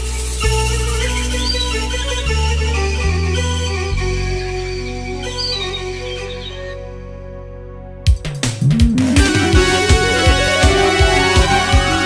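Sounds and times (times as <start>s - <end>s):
keyboard folk melody: 0.0s - 12.0s
sustained low bass notes: 0.0s - 12.0s.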